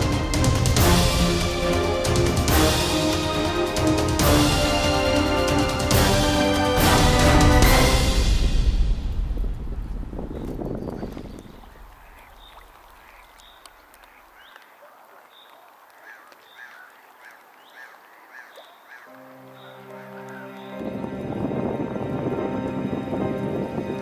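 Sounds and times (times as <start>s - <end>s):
background music: 0.0s - 10.7s, 19.1s - 24.0s.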